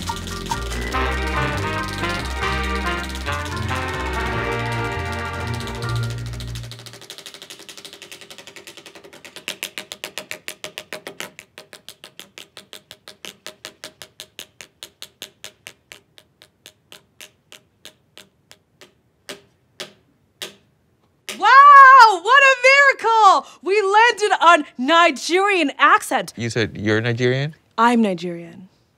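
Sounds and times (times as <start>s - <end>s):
music: 0.0s - 7.0s
prize wheel flapper clicking: 0.0s - 8.3s.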